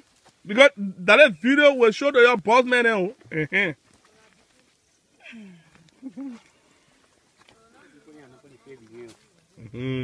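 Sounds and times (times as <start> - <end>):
person humming: 9.6 - 10.0.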